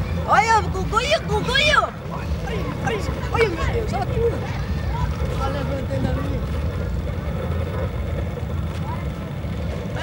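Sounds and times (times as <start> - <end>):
faint voices: 0.0 - 10.0
wind buffeting microphone: 0.7 - 10.0.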